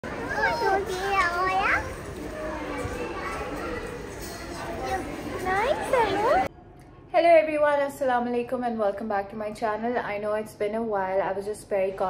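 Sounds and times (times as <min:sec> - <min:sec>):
young child talking: 0:00.2 - 0:06.2.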